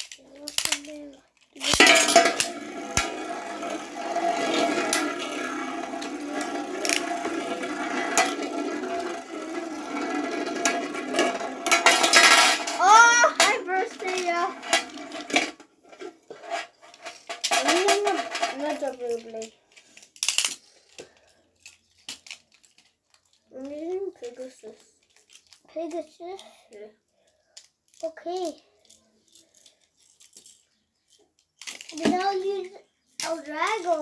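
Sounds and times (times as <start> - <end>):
children's voices: 0.2 - 11.4, 12.6 - 14.6, 17.6 - 19.5, 25.7 - 27.0, 31.9 - 34.0
spinning tops clinking together: 1.6 - 15.6, 16.5 - 19.5
spinning tops whirring on metal: 1.6 - 15.6.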